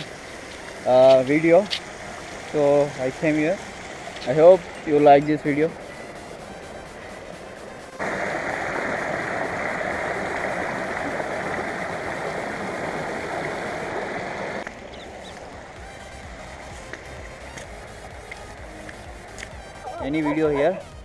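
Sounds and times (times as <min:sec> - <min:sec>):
river rushing over rapids: 0:00.0 - 0:18.5.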